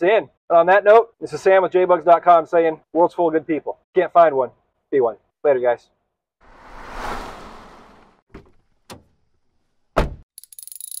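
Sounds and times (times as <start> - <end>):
whoosh: 6.4 - 8.2
fast high rattle of ticks: 10.4 - 11.0.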